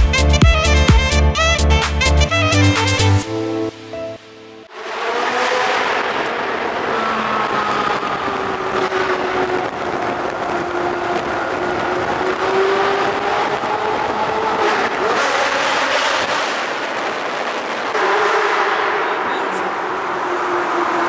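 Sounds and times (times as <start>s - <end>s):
car engine and tyre noise: 0.0s - 21.0s.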